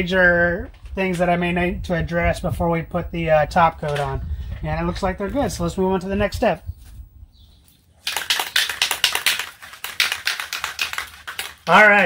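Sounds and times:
aerosol can rattling: 8.0s - 11.9s.

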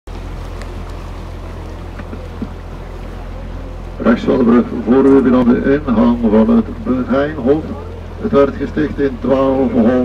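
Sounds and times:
boat motor humming: 0.1s - 10.0s
water noise: 0.1s - 10.0s.

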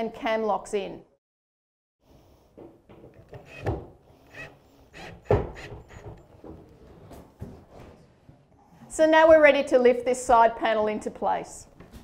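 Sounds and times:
knocks and thumps of wooden panels: 2.6s - 4.0s, 5.2s - 8.0s.

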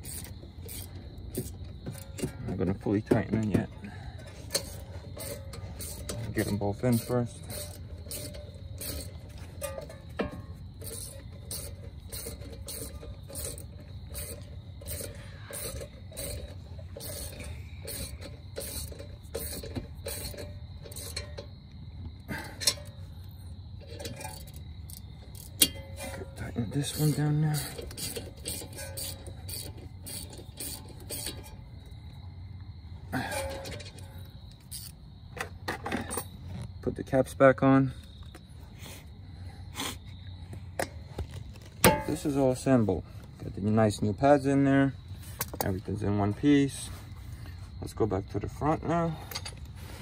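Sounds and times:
hand ratchet clicking: 0.0s - 2.3s, 4.2s - 21.5s, 23.9s - 31.6s, 34.6s - 35.0s
metal tools clinking: 0.0s - 21.6s, 22.3s - 23.0s, 23.8s - 31.8s, 33.2s - 36.4s, 40.8s - 42.8s, 48.8s - 49.8s.

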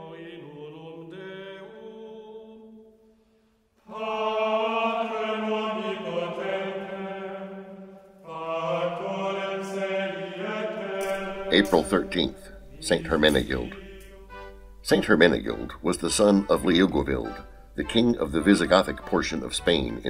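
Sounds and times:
choir chanting long notes: 0.0s - 18.1s.

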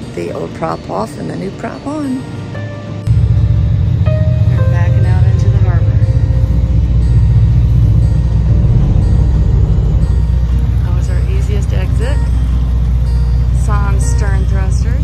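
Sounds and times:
background music: 0.0s - 15.0s
steady low rumble: 3.1s - 15.0s.

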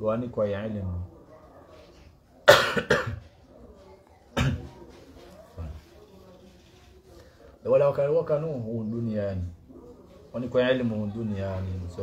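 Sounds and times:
man coughing: 2.4s - 3.2s.

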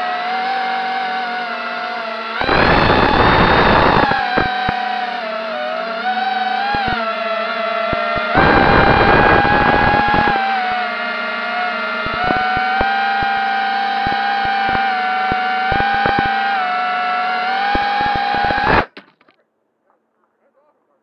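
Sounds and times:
drone motors whining: 0.0s - 18.9s
clicks: 2.4s - 4.8s, 6.7s - 7.0s, 7.9s - 10.4s, 12.0s - 13.4s, 14.0s - 16.4s, 17.6s - 19.4s.

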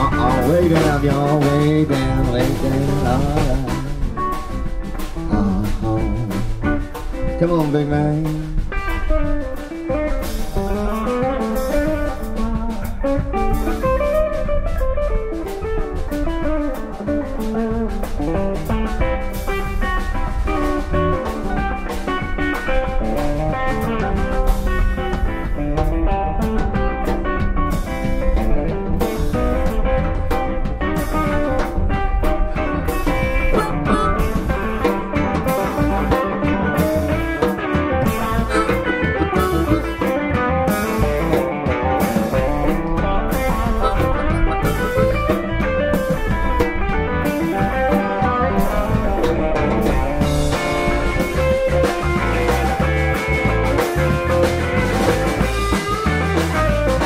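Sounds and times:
bass guitar: 0.0s - 57.0s
drum kit: 0.0s - 57.0s
electric guitars: 0.0s - 57.0s.

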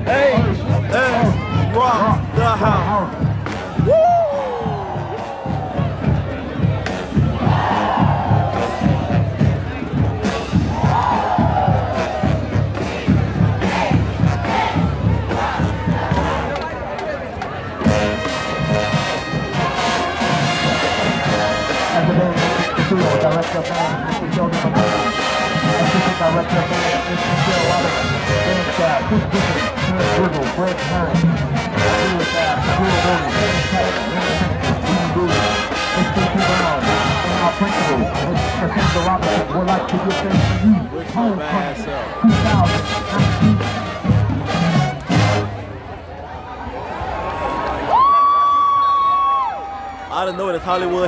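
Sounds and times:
drumline steady beat: 0.0s - 41.4s, 42.2s - 45.7s
crowd shouting and cheering: 0.0s - 51.0s
brass section playing loud: 17.8s - 41.4s, 42.1s - 45.9s.

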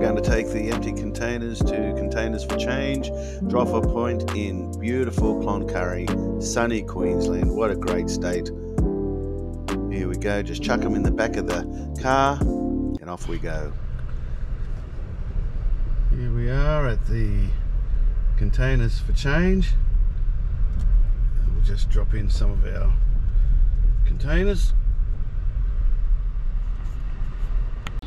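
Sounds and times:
car engine and road hum: 0.0s - 28.0s.

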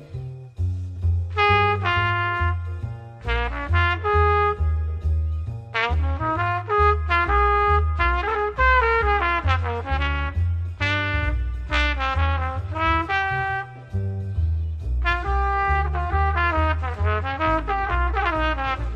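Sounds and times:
double bass walking line: 0.0s - 18.9s
jazz trumpet: 0.0s - 18.9s.

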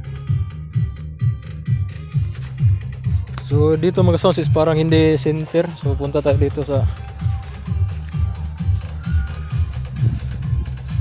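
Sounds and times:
distant bass-heavy music: 0.0s - 11.0s.

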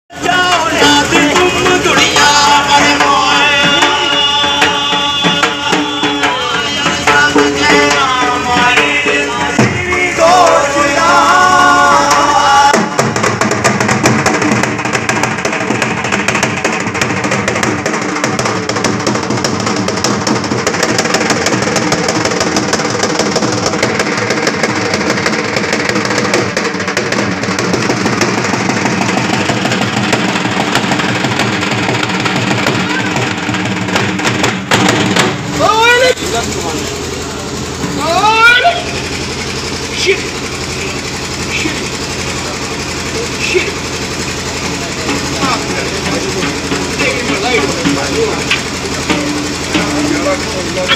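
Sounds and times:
men shouting: 0.1s - 13.0s, 32.6s - 33.6s, 35.5s - 36.3s, 37.9s - 39.3s, 45.1s - 50.9s
voices singing: 0.1s - 13.2s
dhol drum beating: 0.1s - 50.9s.

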